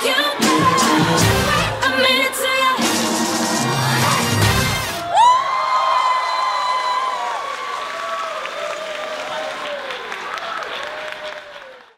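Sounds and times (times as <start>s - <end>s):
dance music: 0.0s - 5.3s
wavering cheers: 3.0s - 11.9s
high whoop: 5.0s - 10.0s
guests applauding: 5.0s - 11.9s.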